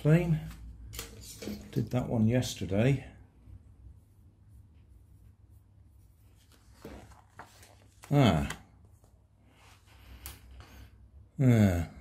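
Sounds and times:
paper pages rustling: 0:00.3 - 0:02.1, 0:06.0 - 0:10.3.

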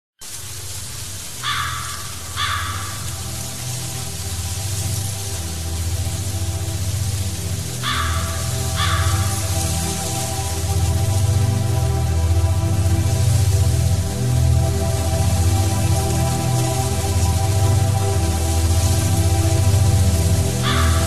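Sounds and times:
steady hiss: 0:00.2 - 0:21.0
low droning metal music: 0:01.2 - 0:21.0
harsh bird caws: 0:01.4 - 0:03.4, 0:07.8 - 0:09.6, 0:20.6 - 0:21.0.

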